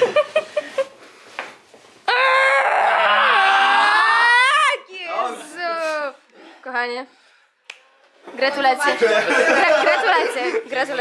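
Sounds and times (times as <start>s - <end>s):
person yelling: 2.1s - 5.5s.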